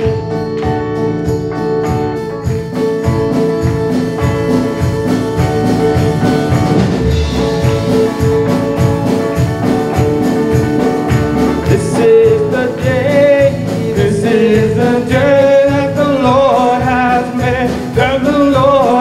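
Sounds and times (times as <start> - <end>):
electric guitars: 0.0 - 19.0
steady beat: 0.0 - 19.0
person singing: 11.3 - 19.0.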